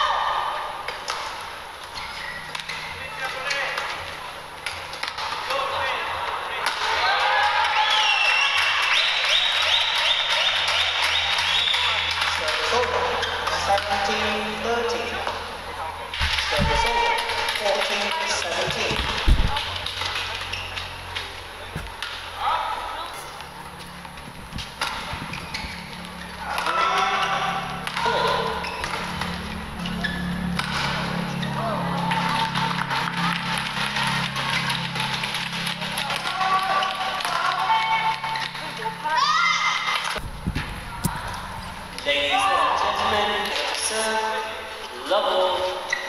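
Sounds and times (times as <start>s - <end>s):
voices: 0.0s - 46.0s
racket hitting shuttlecock: 24.6s - 31.3s
steady low hum: 40.2s - 42.1s.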